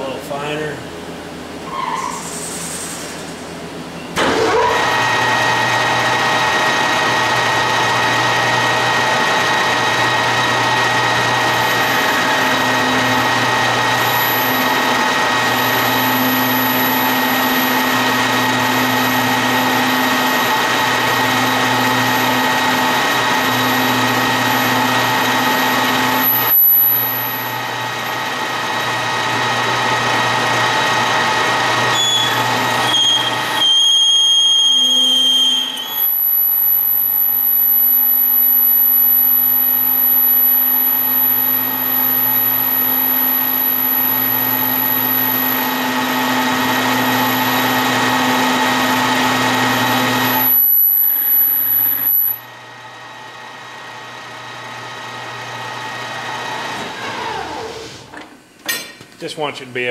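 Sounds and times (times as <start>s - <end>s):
lathe running with whine: 3.6s - 58.0s.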